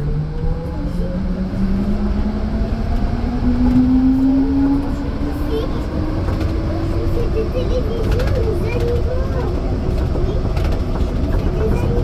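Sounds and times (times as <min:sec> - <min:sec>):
passengers' voices: 0:00.0 - 0:12.0
train rumble with rising whine: 0:00.0 - 0:12.0.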